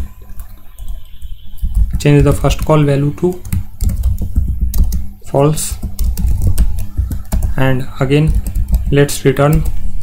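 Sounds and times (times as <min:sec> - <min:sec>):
computer keyboard typing: 0:00.0 - 0:10.0.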